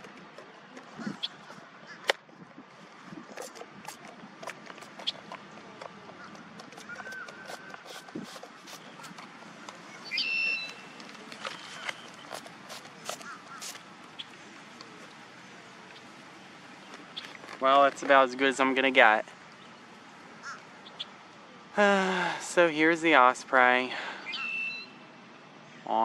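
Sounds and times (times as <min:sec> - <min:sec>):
high bird chirp: 0:09.8 - 0:11.0, 0:24.2 - 0:25.0.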